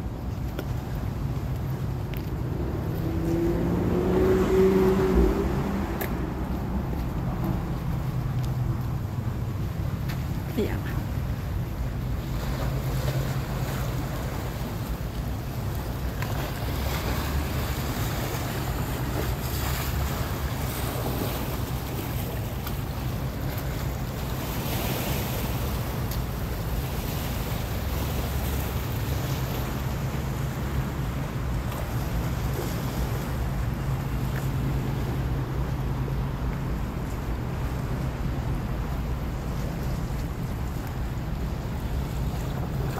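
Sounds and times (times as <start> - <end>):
water washing against seawall: 0.0 - 42.9
wind on microphone: 1.8 - 9.8.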